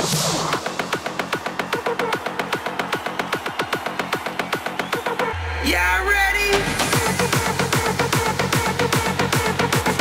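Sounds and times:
fast electronic dance beat: 0.0s - 10.0s.

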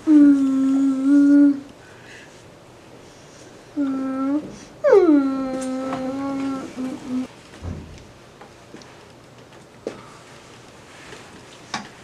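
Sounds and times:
person humming: 0.0s - 1.8s, 3.7s - 7.3s.

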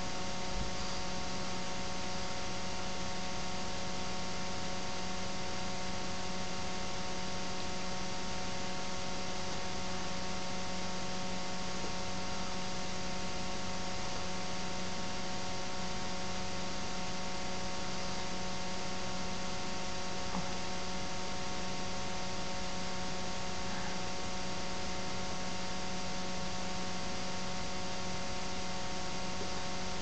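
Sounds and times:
electrical hum and hiss: 0.0s - 30.0s.

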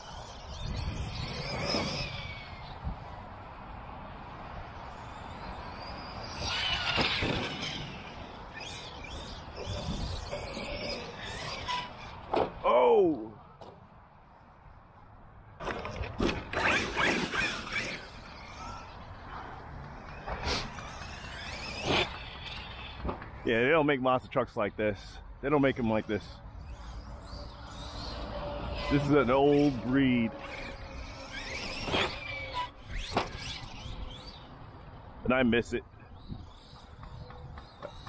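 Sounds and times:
toy truck electric motor whining: 0.0s - 3.2s, 4.7s - 12.4s, 15.6s - 23.4s, 25.0s - 35.2s, 36.0s - 38.0s
electric motor whining: 25.7s - 34.5s.

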